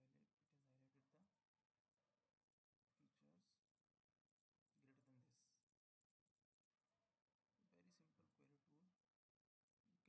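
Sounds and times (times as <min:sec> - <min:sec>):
faint murmur of voice: 0:02.9 - 0:03.6, 0:07.6 - 0:09.0.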